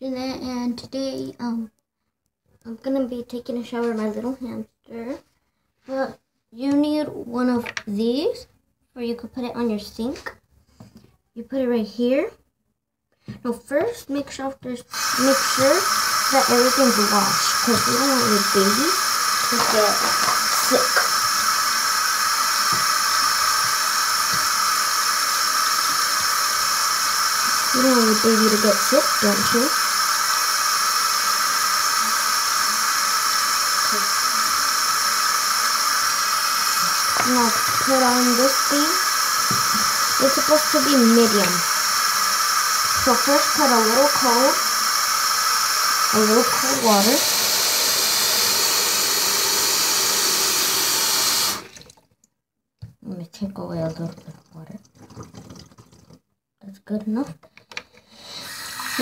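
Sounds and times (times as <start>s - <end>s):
tap running into a basin: 15.0s - 52.0s, 53.9s - 56.2s
tap water splashing into sink: 19.5s - 21.2s, 36.8s - 38.2s, 39.4s - 40.4s, 51.5s - 52.2s, 53.8s - 56.2s.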